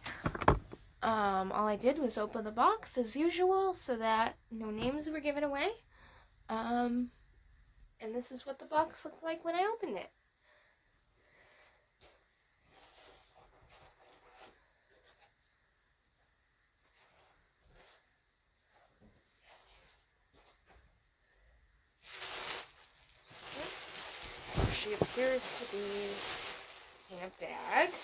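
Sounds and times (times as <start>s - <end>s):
gift bag crinkling and rustling: 22.0s - 28.0s
handling noises: 22.0s - 28.0s.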